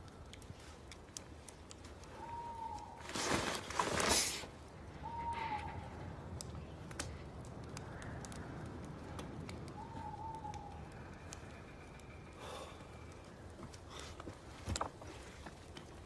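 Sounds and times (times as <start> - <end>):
faint scattered clicks: 0.0 - 3.0, 4.6 - 16.0
bird whistled call: 5.0 - 5.8.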